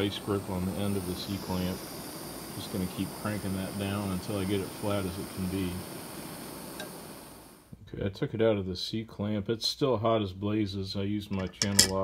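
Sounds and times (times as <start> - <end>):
blowtorch flame hissing: 0.0 - 7.7.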